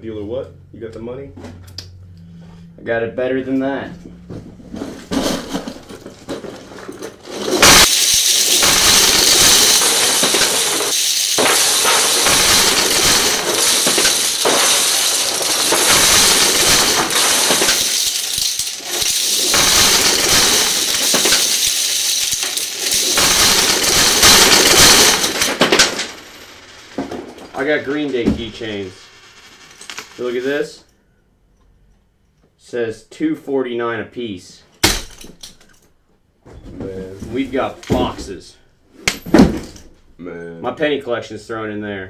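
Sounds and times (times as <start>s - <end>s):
keychains jingling onto a desk: 6.6s - 26.4s.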